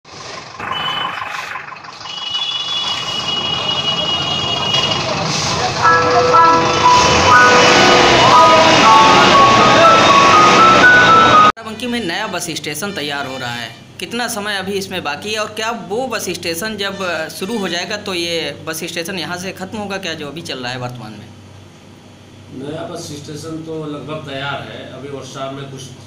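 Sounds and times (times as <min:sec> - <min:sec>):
bus engines running: 0:00.1 - 0:11.5
electronic beeping tune: 0:05.8 - 0:11.5.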